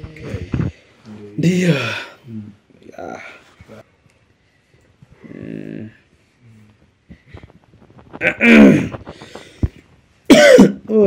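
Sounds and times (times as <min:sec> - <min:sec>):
man coughing: 0:10.3 - 0:10.9.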